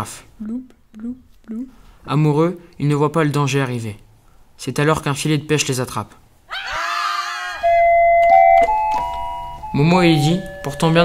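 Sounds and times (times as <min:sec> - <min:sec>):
high held cry: 0:06.5 - 0:07.7
electronic keyboard notes: 0:07.6 - 0:11.0.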